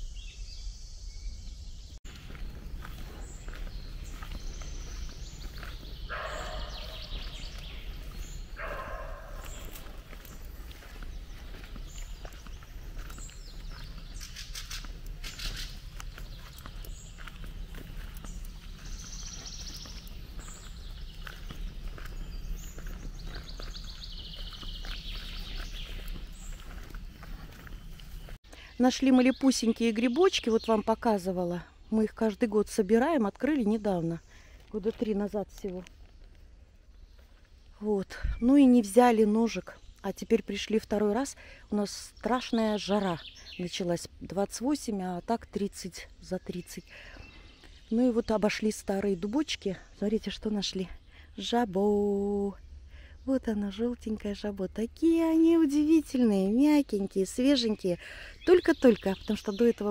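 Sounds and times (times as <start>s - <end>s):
songbirds calling: 0.0s - 59.9s
steady low rumble: 1.8s - 28.4s.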